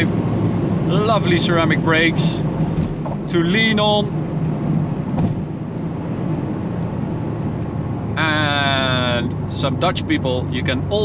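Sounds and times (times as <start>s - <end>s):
car engine drone in cabin: 0.0s - 11.0s
tyre and wind noise: 2.4s - 3.4s, 4.2s - 6.5s.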